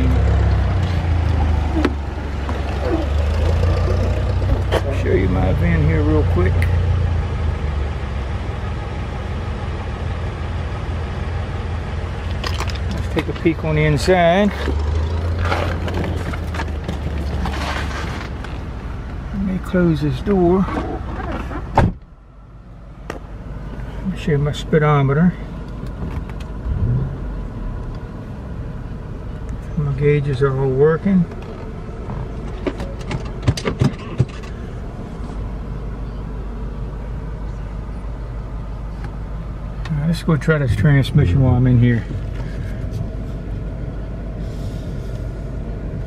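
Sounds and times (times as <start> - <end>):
car engine idling: 0.0 - 46.0
rustling: 14.5 - 18.7.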